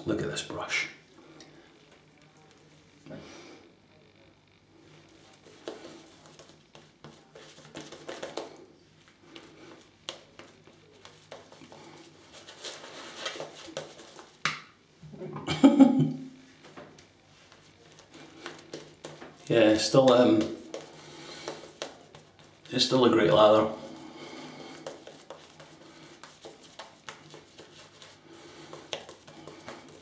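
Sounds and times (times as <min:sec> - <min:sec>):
shaving brush wet swishing: 0:24.4 - 0:30.0.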